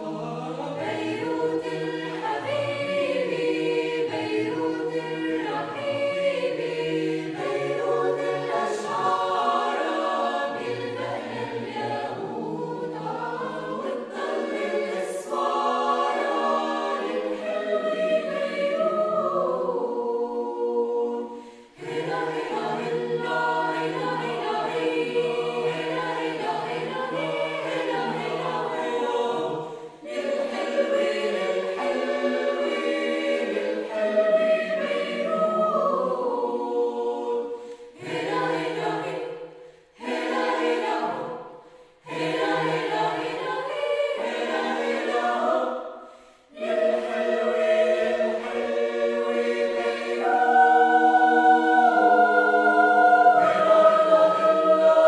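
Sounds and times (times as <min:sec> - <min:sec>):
mixed choir singing: 0:00.0 - 0:55.0.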